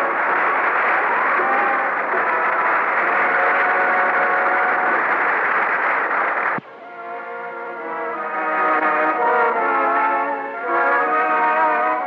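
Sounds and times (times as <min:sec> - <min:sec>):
audience laughter and applause: 0:00.0 - 0:06.6
orchestral music with brass: 0:00.0 - 0:12.0.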